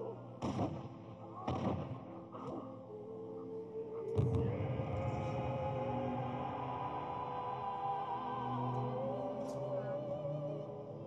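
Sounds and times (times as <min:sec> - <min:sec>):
film music score: 0:00.0 - 0:11.0.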